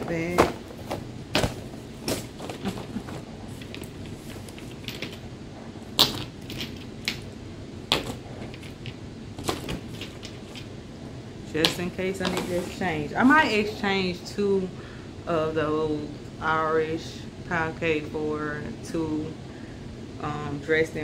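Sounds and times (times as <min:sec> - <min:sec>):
shopping bag rustling: 0:00.0 - 0:05.2.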